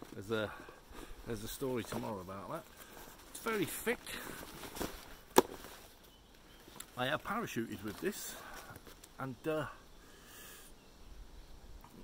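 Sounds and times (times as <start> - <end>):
rucksack handling rustle: 0.0 - 9.3.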